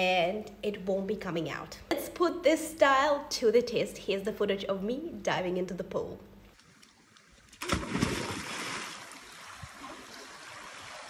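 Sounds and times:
churning water: 6.8 - 11.0
splash of diving into pool: 7.5 - 11.0.

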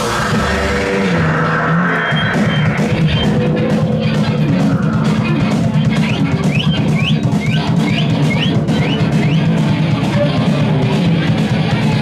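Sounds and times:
short rising high guitar notes: 0.0 - 9.4
live rock band playing: 0.0 - 12.0.

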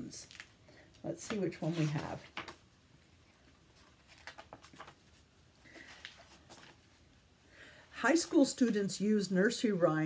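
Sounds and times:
book pages turning: 1.2 - 2.6, 3.3 - 6.8.

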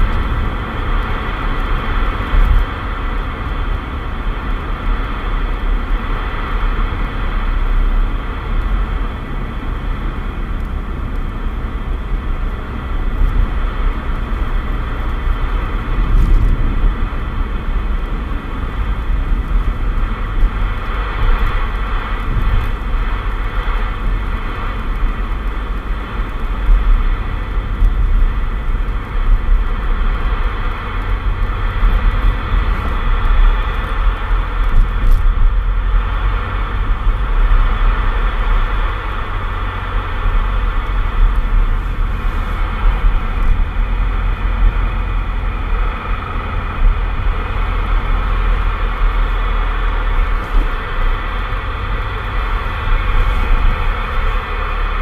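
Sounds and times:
car engine and tyre rumble: 0.0 - 55.0.

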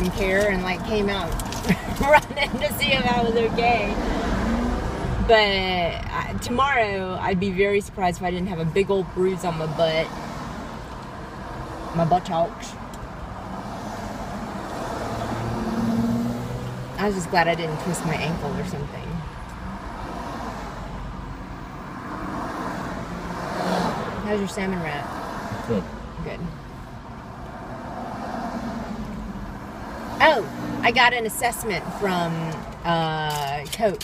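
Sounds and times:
road and engine noise: 0.0 - 34.0.

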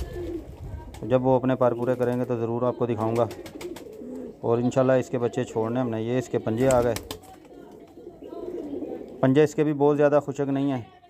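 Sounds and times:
pigeons cooing: 0.0 - 1.0, 1.7 - 9.4.

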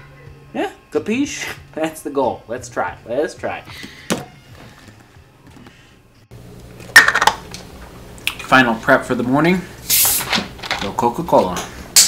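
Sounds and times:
steady low hum: 5.2 - 10.6.

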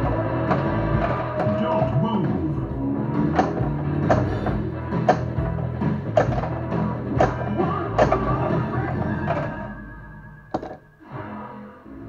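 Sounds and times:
pinball game music: 0.0 - 11.0
sharp mechanical thunk: 7.2 - 8.2.

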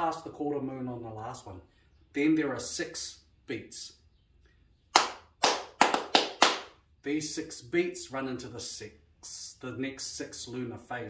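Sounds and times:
hand claps: 4.9 - 6.8.

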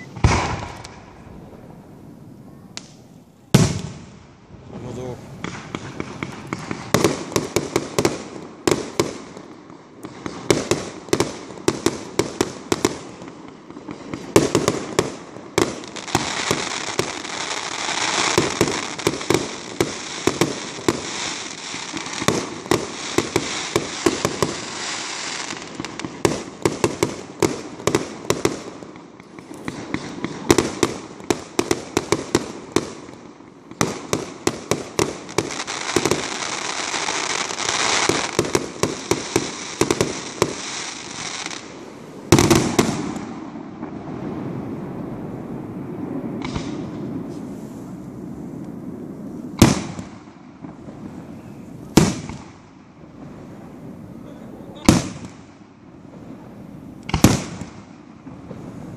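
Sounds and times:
firework bangs: 0.0 - 58.9
firework hiss: 0.0 - 58.9.

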